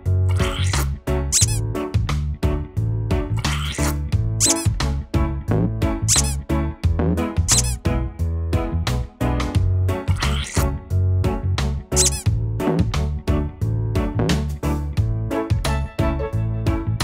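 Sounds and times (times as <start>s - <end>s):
upbeat children's music: 0.0s - 17.0s
rubber duck squeaks: 0.3s - 1.6s, 3.4s - 4.7s, 6.1s - 6.4s, 7.5s - 7.8s, 10.1s - 10.7s, 11.9s - 12.3s.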